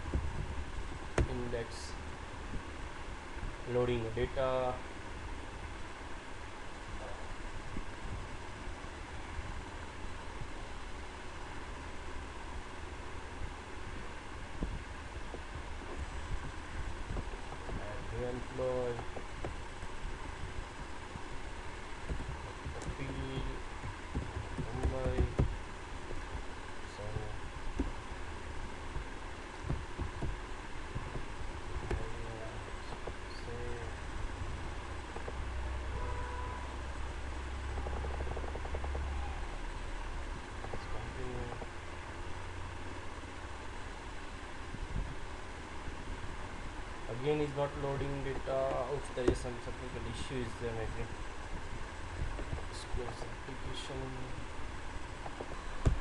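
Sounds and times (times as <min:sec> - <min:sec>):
steady low hum: 0:00.0 - 0:56.0
even hiss: 0:22.8 - 0:23.8, 0:31.8 - 0:34.0, 0:47.0 - 0:54.6.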